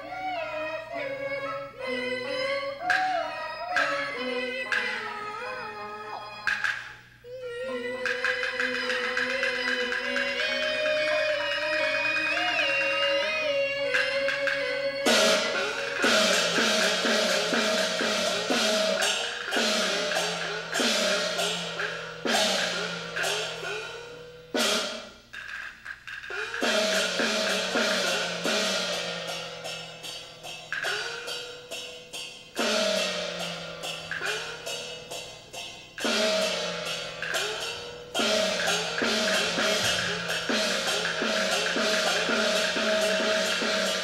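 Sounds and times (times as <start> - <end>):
cymbal strokes: 6.4 - 44.0.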